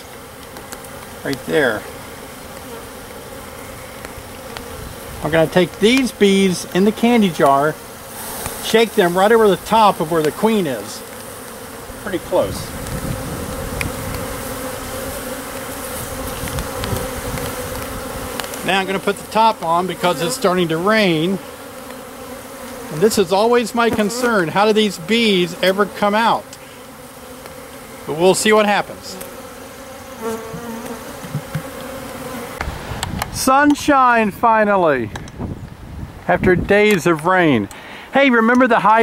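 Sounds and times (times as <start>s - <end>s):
honey bees buzzing: 0.0s - 39.0s.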